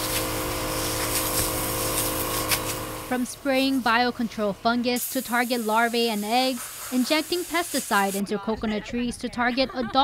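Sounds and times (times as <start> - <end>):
small motor humming: 0.0 - 3.9.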